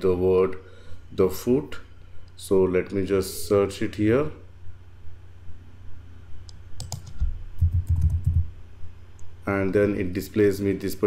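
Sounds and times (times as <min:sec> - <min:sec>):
computer keyboard typing: 0:06.8 - 0:08.5.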